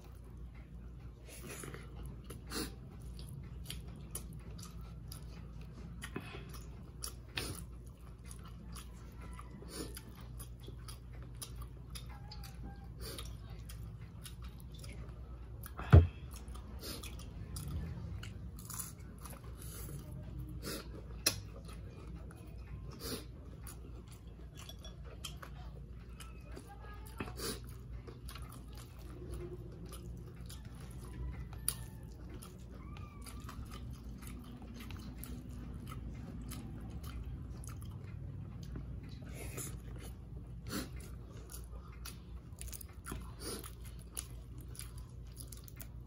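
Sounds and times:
person chewing: 0.0 - 46.0.

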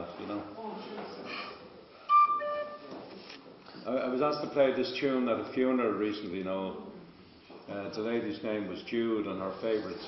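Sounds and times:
tin whistle notes: 2.1 - 2.9.

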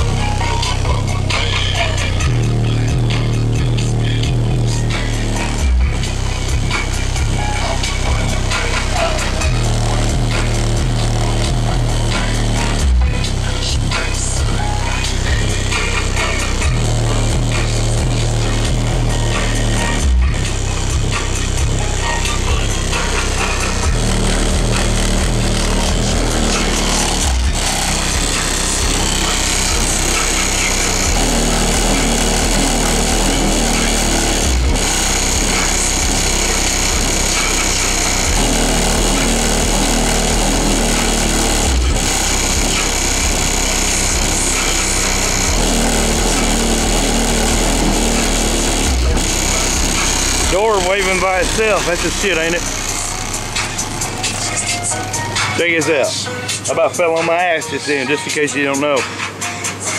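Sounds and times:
bass-heavy music through subwoofers: 0.0 - 59.9.

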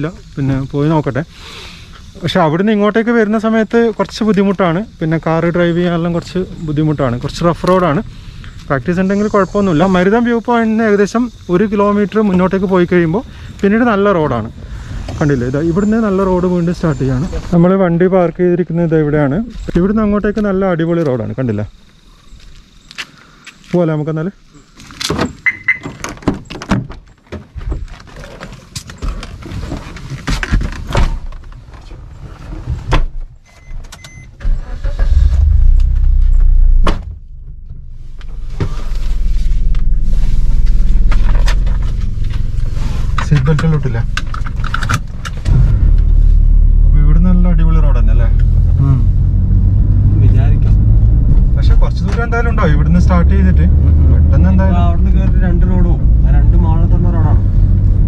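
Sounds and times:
car engine low rumble: 0.0 - 33.4, 34.0 - 58.0.

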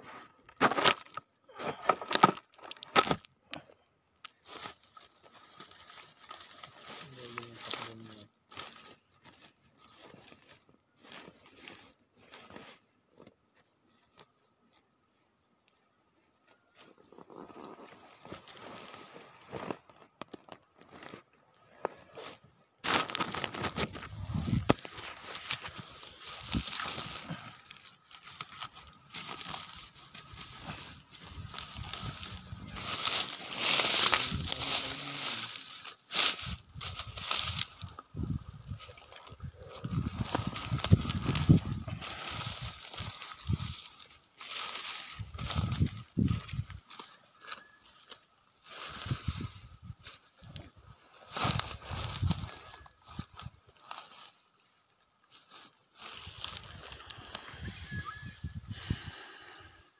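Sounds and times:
leaves and plastic rustling: 0.0 - 59.0.

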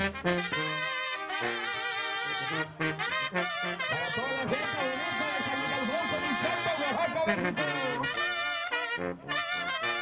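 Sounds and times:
brass band playing: 0.0 - 10.0
tuba bass line: 0.0 - 10.0.

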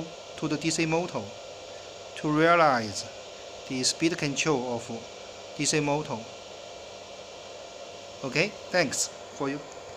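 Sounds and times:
faint hum tones: 0.0 - 9.9.

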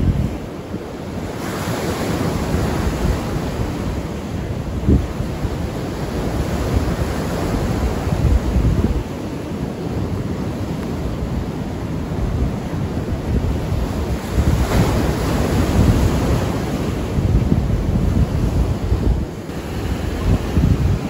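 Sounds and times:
ocean waves breaking on shore: 0.0 - 21.0
wind buffeting microphone: 0.0 - 21.0.

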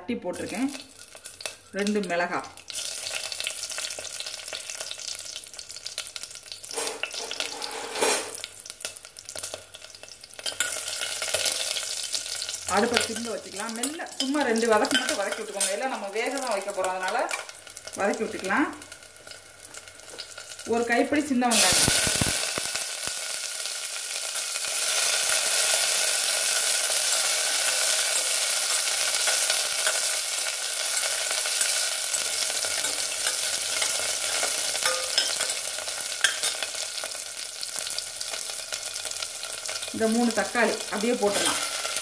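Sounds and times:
shallots sizzling in hot oil: 0.3 - 42.0.

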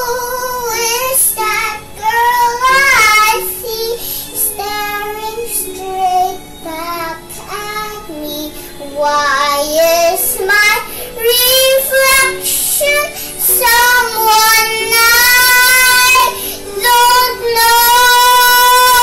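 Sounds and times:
girl singing: 0.0 - 19.0.

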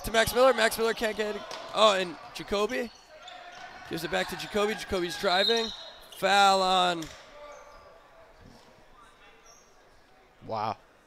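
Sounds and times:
distant voices in gym: 0.0 - 11.0.

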